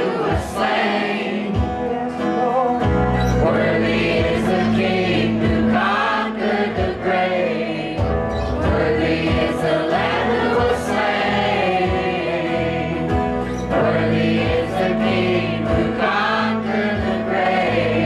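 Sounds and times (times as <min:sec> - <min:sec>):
people singing into microphones: 0:00.0 - 0:18.0
strummed acoustic guitar: 0:00.0 - 0:18.0.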